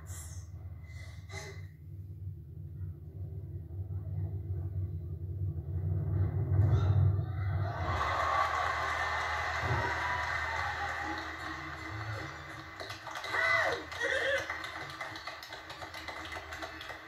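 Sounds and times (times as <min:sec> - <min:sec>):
audience applauding and cheering: 0:07.6 - 0:17.0.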